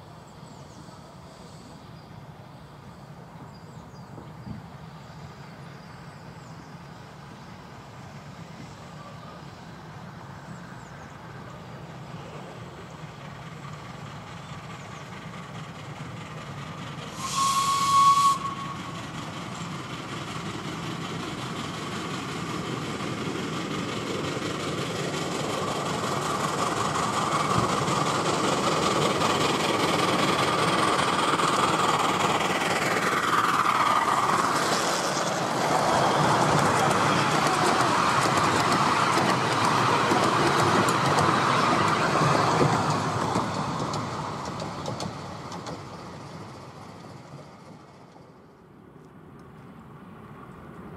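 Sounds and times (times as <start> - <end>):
miniature train passing: 0.0 - 50.9
steam locomotive whistle: 17.1 - 19.1.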